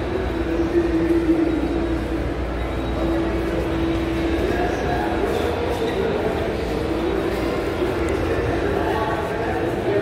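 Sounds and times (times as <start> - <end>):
shopping mall background rumble: 0.0 - 10.0.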